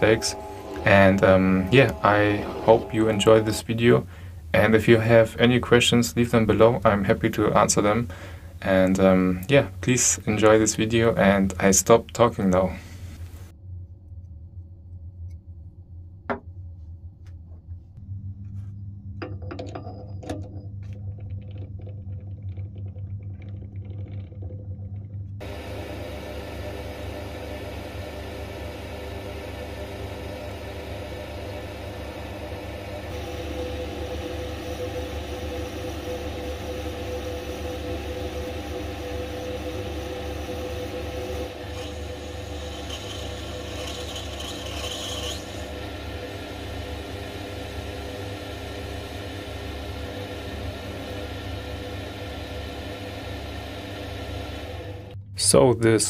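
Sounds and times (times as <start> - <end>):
lathe cutting brass whir: 0.0 - 4.1, 25.4 - 55.2.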